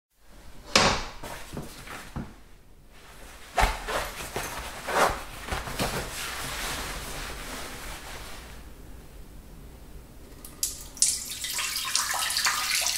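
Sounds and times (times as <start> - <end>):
bathroom fixtures knocking and clicking: 0.7 - 1.2.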